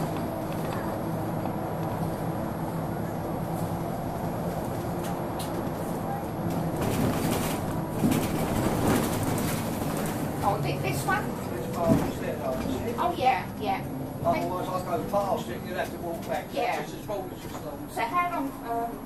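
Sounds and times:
bus body rattling: 0:00.0 - 0:19.0
bus engine drone: 0:00.0 - 0:19.0.

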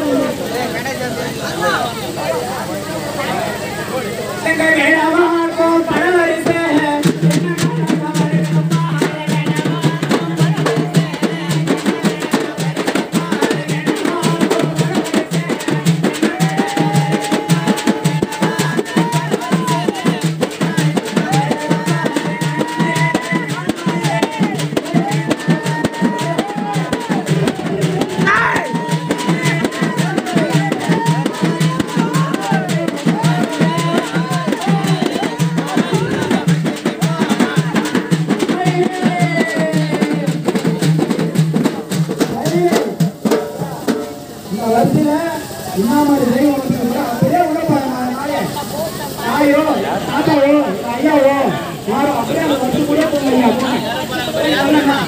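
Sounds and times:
fast drumming on large drums: 0:04.4 - 0:55.0
wailing melody: 0:20.8 - 0:40.8.

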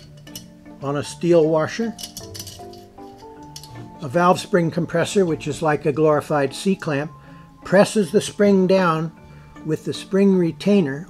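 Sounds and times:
light metallic clinks: 0:00.0 - 0:00.6, 0:01.9 - 0:03.8
soft background music: 0:00.0 - 0:11.0.

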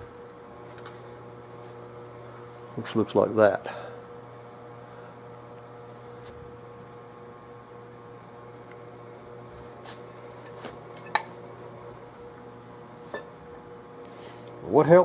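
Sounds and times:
steady hum: 0:00.0 - 0:15.0.

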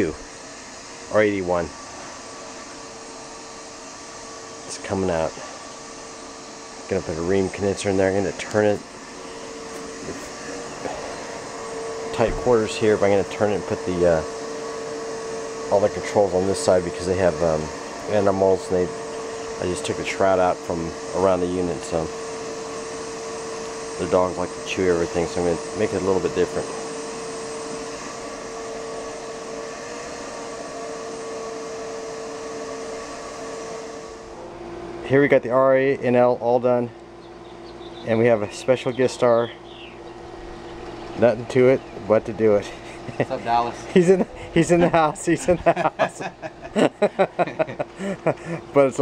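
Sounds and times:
steady machine hum: 0:00.0 - 0:49.0.

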